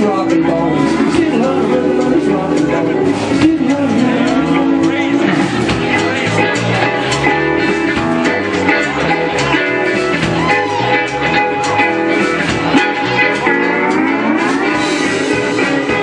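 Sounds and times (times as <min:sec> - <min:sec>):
electric guitars: 0:00.0 - 0:16.0
live country band: 0:00.0 - 0:16.0.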